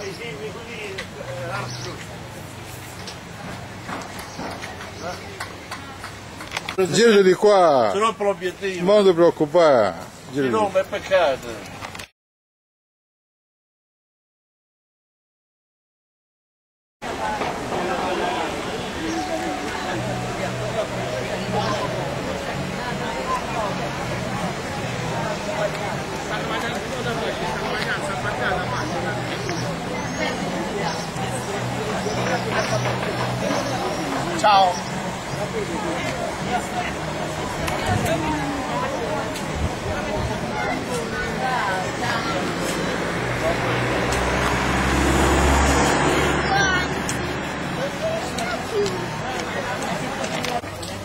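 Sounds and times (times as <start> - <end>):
crowd chatter: 0.0 - 12.1, 17.0 - 51.0
indistinct market voices: 0.0 - 12.1, 17.0 - 51.0
motor vehicle passing by: 17.2 - 50.9.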